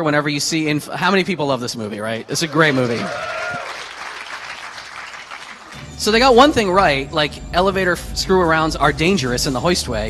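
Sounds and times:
audience applauding: 2.4 - 5.8.

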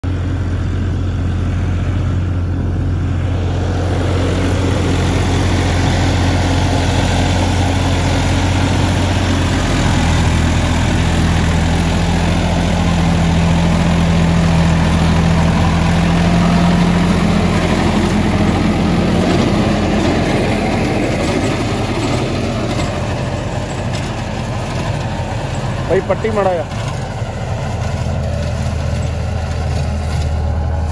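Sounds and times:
tractor diesel engine under load: 0.0 - 30.9.

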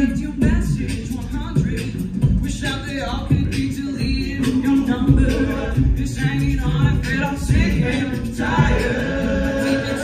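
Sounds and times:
male a cappella group singing: 2.7 - 10.0.

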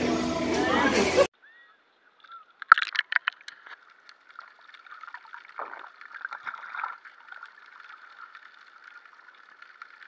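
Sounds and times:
water sloshing against camera housing: 2.2 - 4.2.

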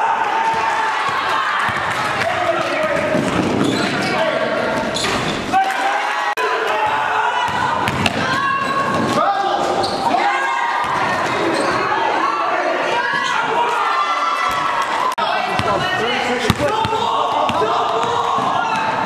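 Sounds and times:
players' voices echoing: 0.0 - 19.0
basketball bouncing: 7.4 - 9.2, 15.5 - 15.8, 16.4 - 19.0.

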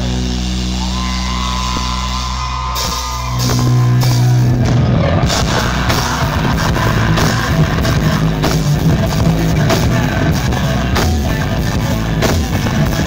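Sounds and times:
drums: 0.0 - 13.0
electric guitars and bass: 0.0 - 13.0.

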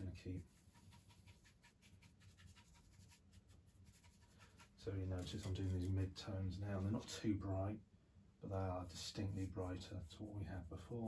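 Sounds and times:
paintbrush scratching on canvas: 0.0 - 6.1, 9.0 - 11.0.

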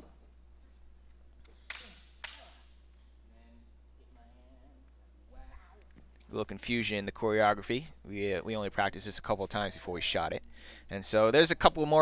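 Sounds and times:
faint low hum: 0.0 - 12.0
practice swords clacking: 1.1 - 2.9.

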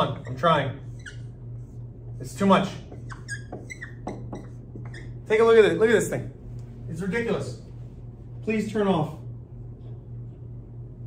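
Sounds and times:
marker squeaking on whiteboard: 0.0 - 5.6
steady low hum: 0.0 - 11.0.

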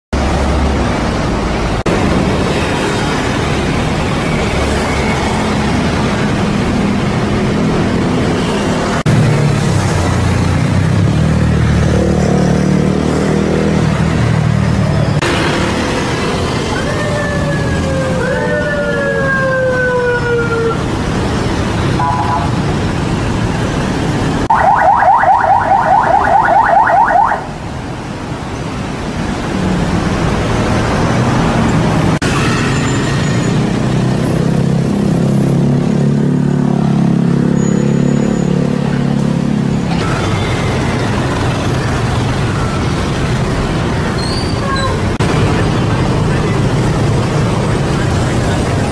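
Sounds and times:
city road traffic: 0.1 - 48.9.

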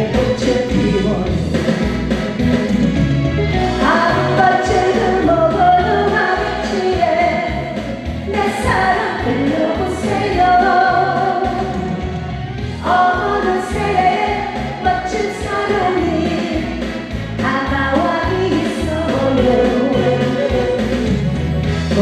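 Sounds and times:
woman singing into microphone: 0.0 - 1.4, 3.6 - 12.0, 12.7 - 21.2
accompaniment track with beat: 0.0 - 22.0.

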